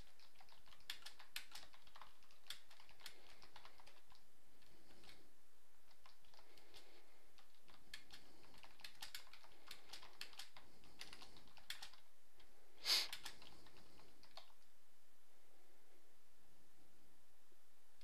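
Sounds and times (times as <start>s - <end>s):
typing on computer keyboard: 0.0s - 5.2s, 5.9s - 12.0s, 13.1s - 14.6s.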